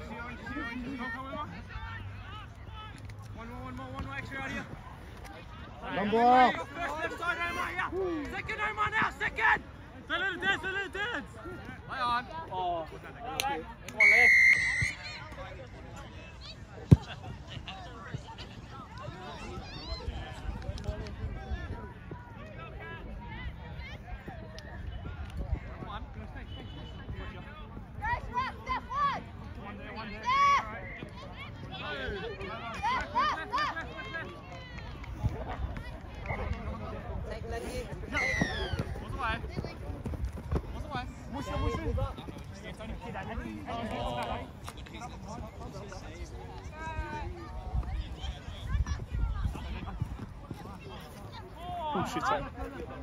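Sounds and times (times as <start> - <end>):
players' voices: 0.0 - 53.0
referee's whistle blast: 14.0 - 15.2.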